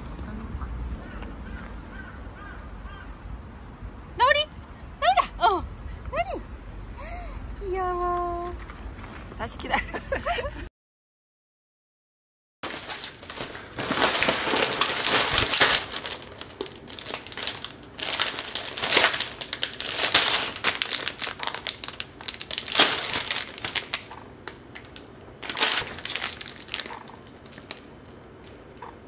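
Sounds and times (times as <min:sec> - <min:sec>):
plastic bag crinkling: 0:12.6 - 0:28.6.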